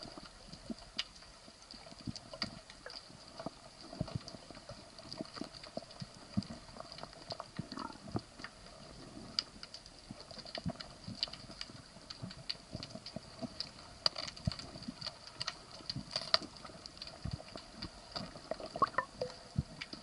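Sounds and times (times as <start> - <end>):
underwater clicks and knocks: 5.0 - 8.6, 9.4 - 20.0.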